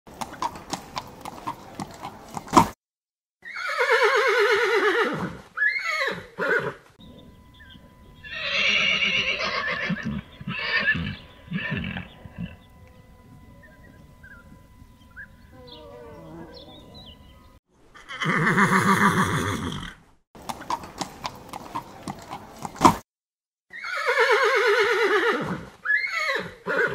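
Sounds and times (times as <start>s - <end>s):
horse whinnying: 3.4s - 6.8s, 8.2s - 12.6s, 18.0s - 20.0s, 23.7s - 26.9s.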